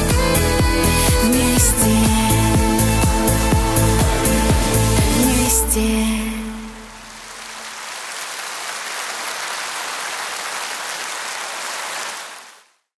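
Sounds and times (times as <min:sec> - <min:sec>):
music: 0:00.0 - 0:07.1
audience applauding: 0:07.0 - 0:12.8.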